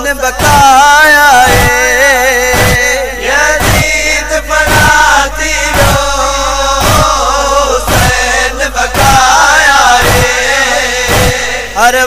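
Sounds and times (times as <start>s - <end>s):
voices chanting a mourning lament: 0.0s - 12.0s
heavy drum beat: 0.3s - 11.9s.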